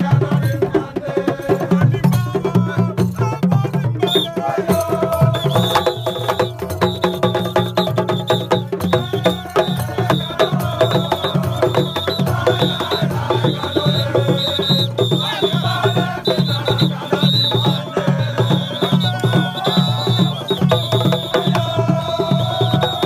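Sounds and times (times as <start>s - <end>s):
fast dense drumming: 0.0s - 23.0s.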